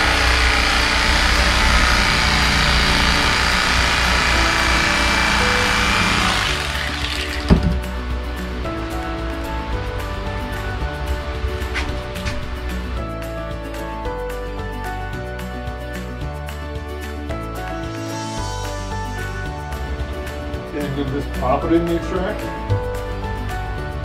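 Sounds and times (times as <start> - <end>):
electric knife motor whining: 0.0 - 7.8
background music: 0.0 - 24.0.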